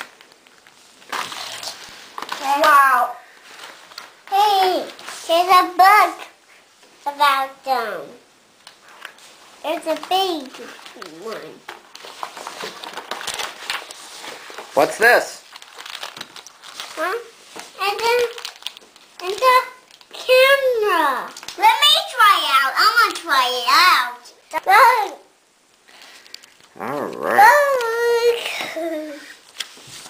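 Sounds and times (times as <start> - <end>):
foil packaging crinkling: 0.0 - 4.2, 8.8 - 21.6.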